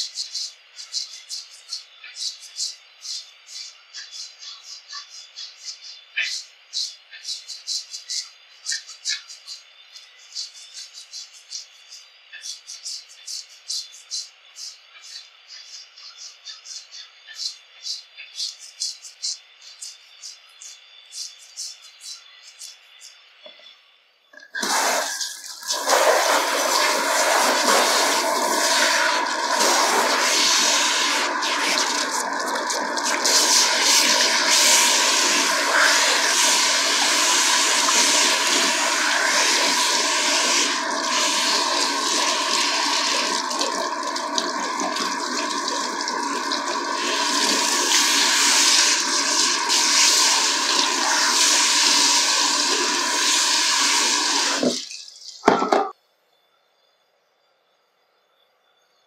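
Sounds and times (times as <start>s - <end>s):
water splashing into sink: 24.4s - 55.9s
shower head spraying water on hair: 24.6s - 55.3s.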